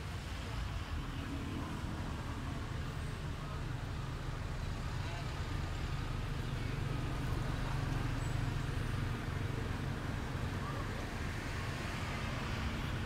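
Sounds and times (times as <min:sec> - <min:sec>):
low outdoor rumble: 0:00.0 - 0:13.0
faint distant voices: 0:00.1 - 0:13.0.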